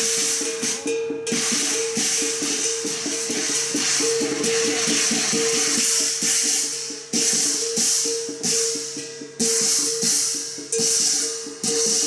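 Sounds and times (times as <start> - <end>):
crashing cymbals: 0.0 - 12.0
fast drumbeat: 0.0 - 12.0.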